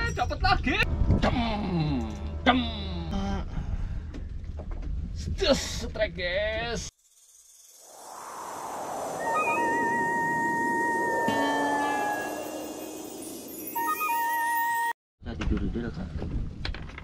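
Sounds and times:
steady whistle-like tones: 0:07.6 - 0:14.9
swelling whoosh: 0:07.7 - 0:13.8.

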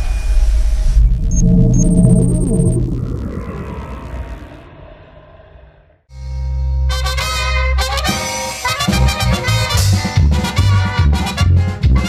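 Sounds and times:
low synth tones: 0:00.0 - 0:06.0
deep rumbling whoosh: 0:00.0 - 0:06.1.

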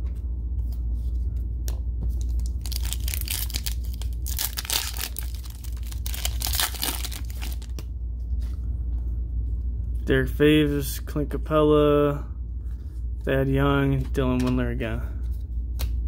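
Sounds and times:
foil wrapper crinkling and ripping: 0:02.2 - 0:07.8.

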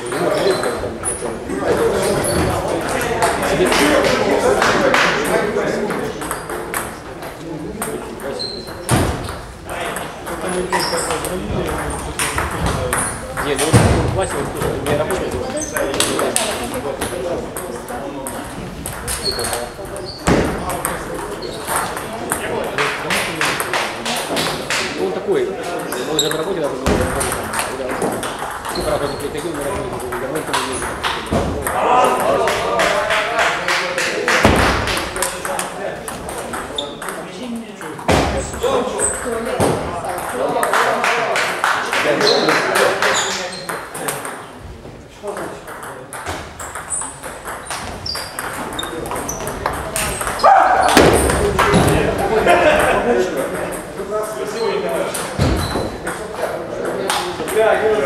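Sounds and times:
people talking: 0:00.0 - 0:46.4, 0:47.0 - 0:58.0
table tennis balls clicking: 0:01.8 - 0:41.0, 0:42.1 - 0:44.6, 0:45.2 - 0:54.1.

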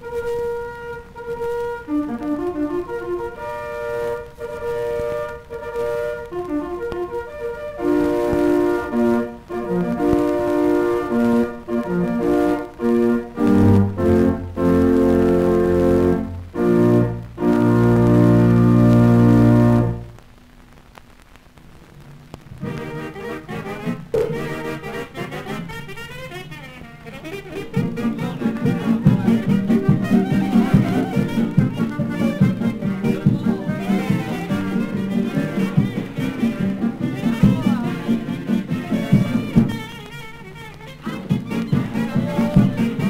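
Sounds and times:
dance band music: 0:22.6 - 0:43.0.

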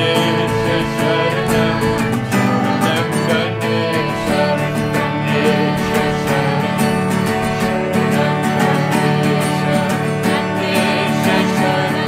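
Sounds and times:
harmonium chords: 0:00.0 - 0:12.0
strummed acoustic guitar: 0:00.0 - 0:12.0
woman and man singing: 0:00.0 - 0:12.0.

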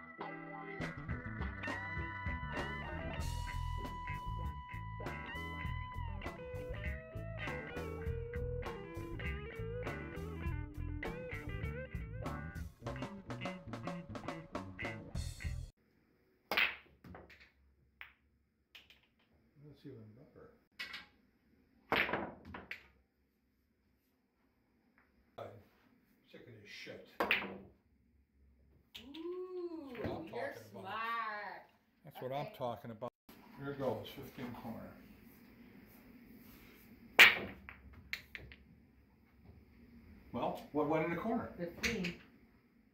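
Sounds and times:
cue ball cracking into racked balls: 0:16.5 - 0:17.6, 0:21.9 - 0:23.0, 0:37.2 - 0:38.7
pool balls clicking: 0:16.5 - 0:19.4, 0:37.2 - 0:38.7.

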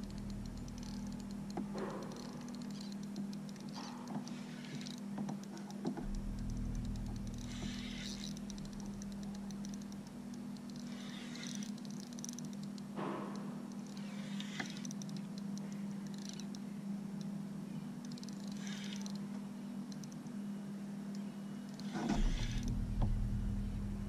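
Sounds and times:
fishing reel ticking: 0:00.0 - 0:17.4, 0:18.0 - 0:19.3, 0:19.9 - 0:20.3, 0:21.7 - 0:22.7
steady low hum: 0:00.0 - 0:24.0.

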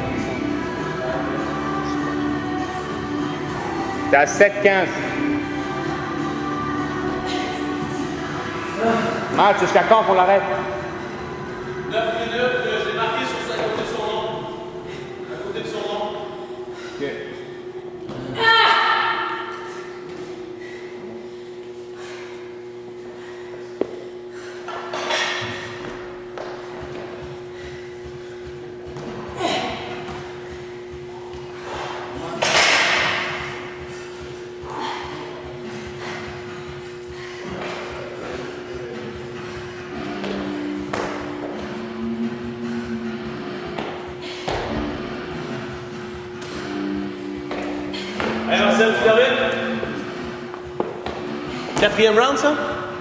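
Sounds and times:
steady low hum: 0:00.0 - 0:53.0
hard noisy breaths: 0:10.6 - 0:11.9, 0:14.6 - 0:18.0, 0:19.4 - 0:32.3, 0:33.0 - 0:48.5.

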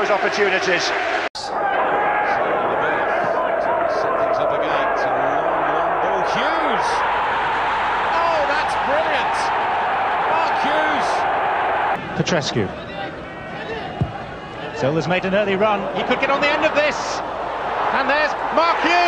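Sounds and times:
stadium crowd voices: 0:00.0 - 0:19.0
crowd chanting: 0:05.5 - 0:12.0.

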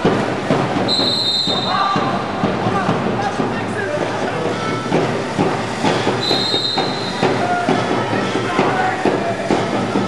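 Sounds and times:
crowd noise and voices echoing: 0:00.0 - 0:10.0
shrill whistle blast: 0:00.9 - 0:02.2, 0:06.1 - 0:07.5.

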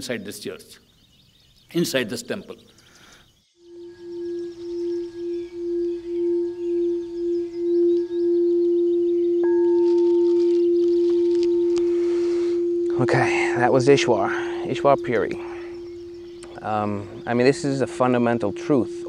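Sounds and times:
crystal singing bowl tone: 0:03.6 - 0:19.0
higher ring from light touch: 0:09.4 - 0:18.7.

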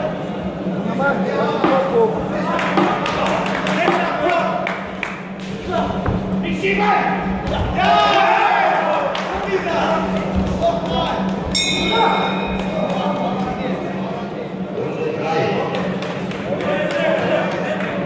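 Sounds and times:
crowd shouting: 0:06.6 - 0:11.2, 0:11.8 - 0:12.7
short metallic ring: 0:11.5 - 0:12.6.

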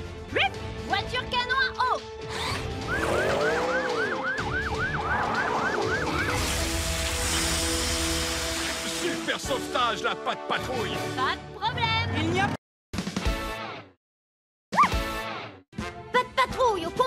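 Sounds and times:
music: 0:00.0 - 0:14.0, 0:14.8 - 0:17.0
cartoon siren warble: 0:02.8 - 0:06.4
long whooshing hiss: 0:06.4 - 0:09.3.

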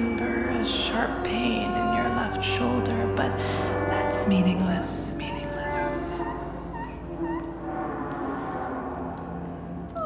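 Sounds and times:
chamber music with electronics: 0:00.0 - 0:10.0.

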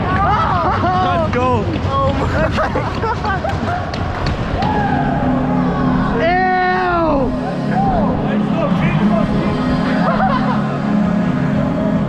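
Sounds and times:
background music: 0:00.0 - 0:12.0
players shouting and whooping: 0:03.6 - 0:08.6.

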